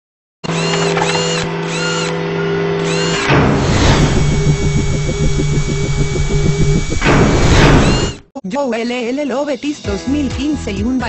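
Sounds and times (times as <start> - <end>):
drone with high chirps: 0.6 - 8.2
whoosh: 3.3 - 8.2
fast pulsing beat: 4.0 - 8.2.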